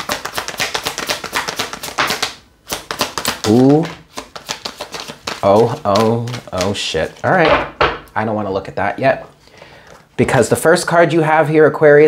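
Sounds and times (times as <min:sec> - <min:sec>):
cards being shuffled: 0:00.0 - 0:07.5.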